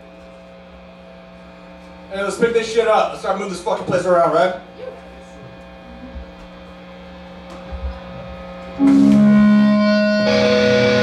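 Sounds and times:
guitar amplifier hum: 0:00.0 - 0:11.0
distorted electric guitar chord: 0:08.7 - 0:11.0.

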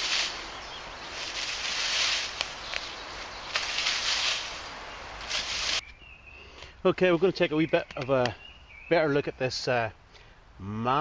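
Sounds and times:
dry leaves rustling and crunching: 0:00.0 - 0:05.8.

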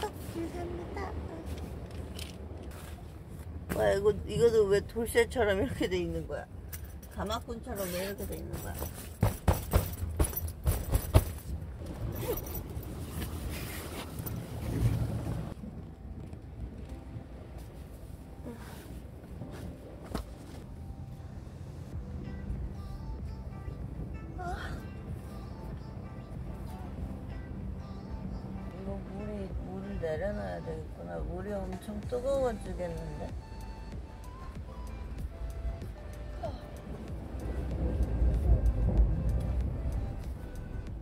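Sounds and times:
soft background music: 0:15.6 - 0:41.0.

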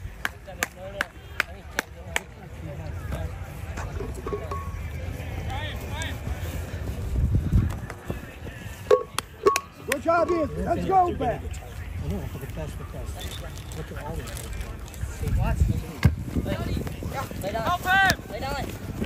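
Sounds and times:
wind rumbling on microphone: 0:03.7 - 0:09.2, 0:14.2 - 0:19.0.

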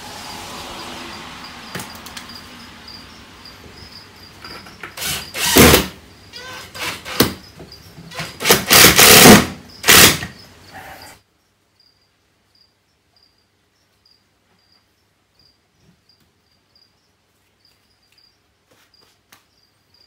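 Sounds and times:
crickets chirping: 0:00.1 - 0:20.0
impact driver driving screws: 0:04.8 - 0:07.4, 0:08.1 - 0:10.4.

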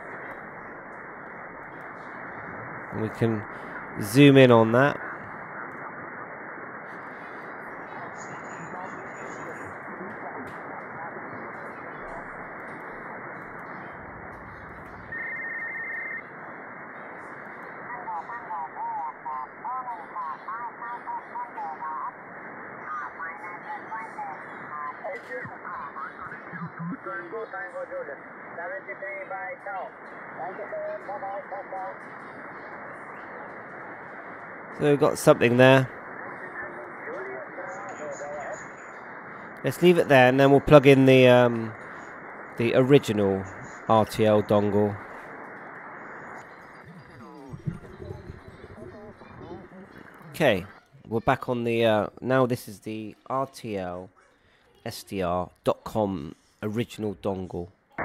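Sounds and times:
shortwave radio hiss: 0:00.0 - 0:57.7
faint radio voices: 0:00.0 - 0:58.0
steady radio whistle: 0:07.0 - 0:10.3, 0:10.9 - 0:16.3, 0:16.9 - 0:51.0.

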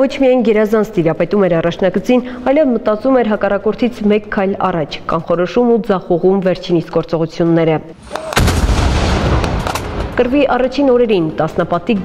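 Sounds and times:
shell explosion with rumble: 0:08.0 - 0:10.5
sharp cracks: 0:08.0 - 0:10.6.

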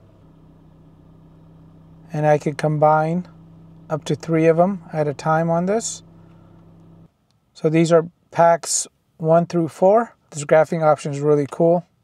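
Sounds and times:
car cabin low hum: 0:00.0 - 0:07.1.

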